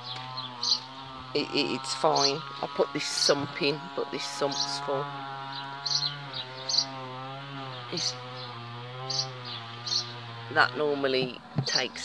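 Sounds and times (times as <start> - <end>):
insect buzzing drone: 0.0 - 12.0.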